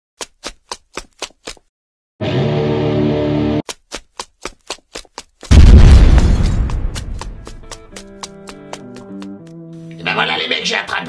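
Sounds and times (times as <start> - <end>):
deep explosion boom: 5.5 - 7.7
gunfire-like cracks: 5.5 - 7.7.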